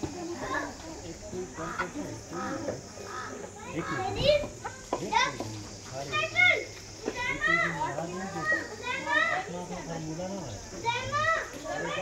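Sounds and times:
children calling out and laughing: 0.0s - 12.0s.

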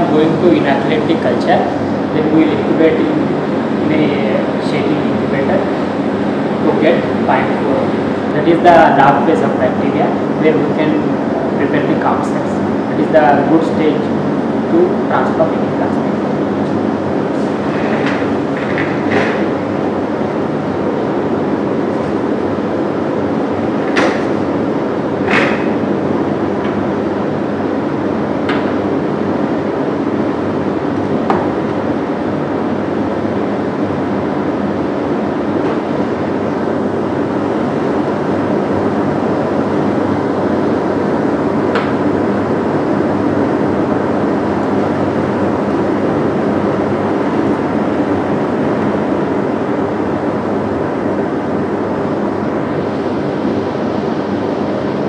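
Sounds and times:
blower fan humming: 0.0s - 55.0s.

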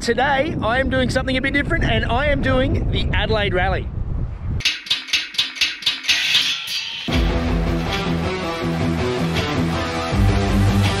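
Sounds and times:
sharp high ticks: 4.6s - 7.3s
guitar music: 4.6s - 11.0s.

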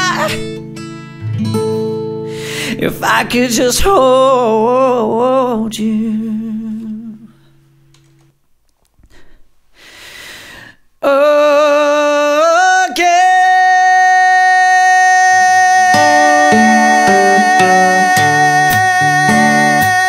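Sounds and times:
acoustic guitar strumming: 0.0s - 6.7s, 13.2s - 20.0s
singer taking a breath: 2.3s - 2.8s, 9.1s - 10.9s
man singing a high note: 2.7s - 7.4s, 11.0s - 20.0s.

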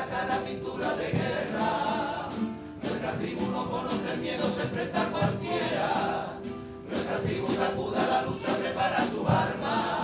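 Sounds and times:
bass drum: 0.0s - 1.9s, 7.1s - 10.0s
guitar: 0.0s - 10.0s
men singing together: 0.0s - 10.0s.

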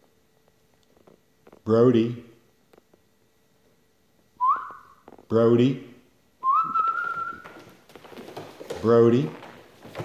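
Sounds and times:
person whistling rising pitch: 4.4s - 5.0s, 6.4s - 7.5s.

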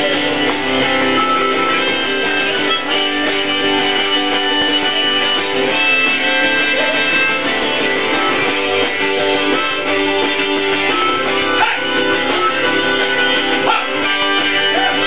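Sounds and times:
acoustic guitars strumming: 0.0s - 15.0s
harmonica playing held notes: 0.0s - 15.0s.

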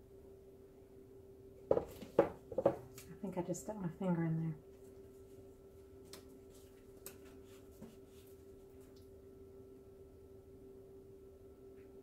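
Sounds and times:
canvas knocking on table: 1.7s - 2.8s.

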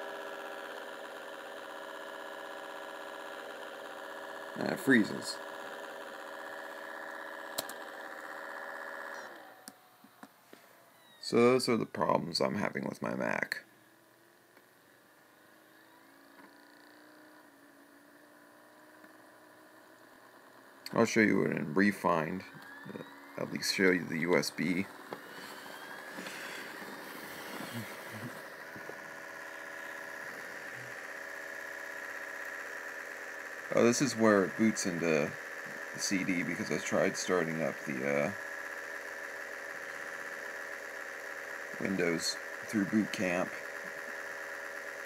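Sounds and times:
computer mechanical hum: 0.0s - 45.0s
laptop electronic buzz: 0.0s - 45.0s
thin high whine: 0.0s - 45.0s
sharp clicks: 7.5s - 7.9s.

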